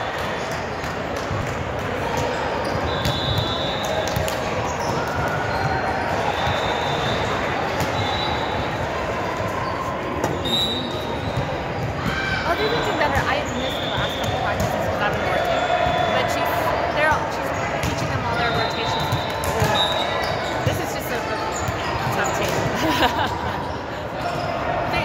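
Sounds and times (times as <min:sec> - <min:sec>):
people talking and calling out: 0:01.8 - 0:25.0
sneaker squeaks on hardwood: 0:02.2 - 0:08.6, 0:09.7 - 0:14.7, 0:17.8 - 0:22.6.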